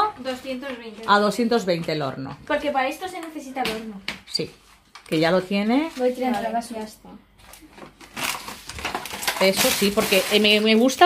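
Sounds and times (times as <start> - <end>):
soft rustling and handling: 4.4 - 11.0.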